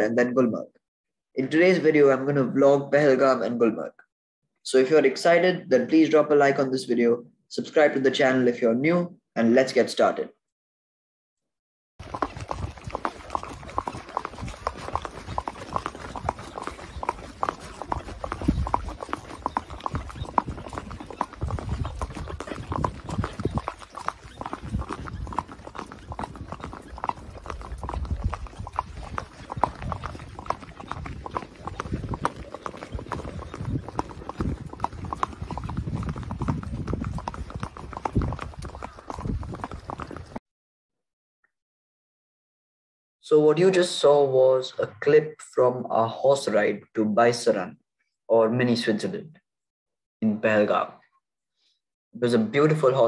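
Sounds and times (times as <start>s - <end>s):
horse hooves on dirt: 12.0s - 40.4s.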